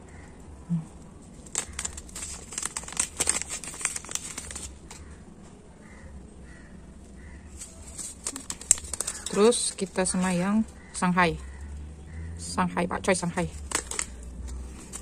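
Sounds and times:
foil packet crinkling: 1.2s - 5.1s, 7.5s - 10.9s, 13.3s - 15.0s.

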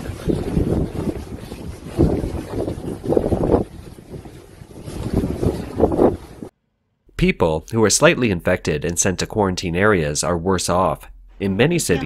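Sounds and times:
wind buffeting microphone: 0.0s - 6.5s.

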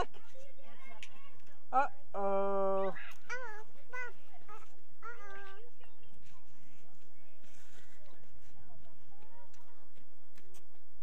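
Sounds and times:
faint scattered voices: 0.0s - 11.0s
child's sing-song call: 2.8s - 6.3s.

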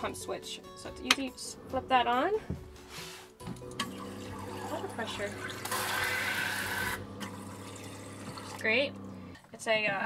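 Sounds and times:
water running into a steel sink: 3.8s - 9.0s.

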